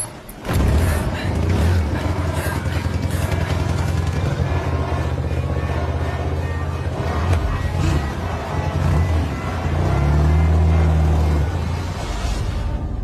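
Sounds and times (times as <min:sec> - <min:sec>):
vehicle engine low rumble: 0:00.3 - 0:13.0
music: 0:11.4 - 0:13.0.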